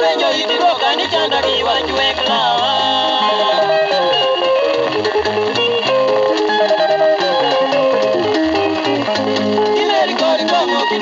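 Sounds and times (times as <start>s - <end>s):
moving bass line: 0.0s - 11.0s
plucked guitar lines: 0.0s - 11.0s.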